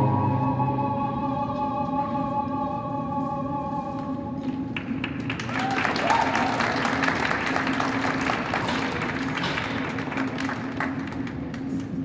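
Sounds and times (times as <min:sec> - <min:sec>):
steady low hum: 0:00.0 - 0:05.5
audience applauding: 0:04.8 - 0:11.8.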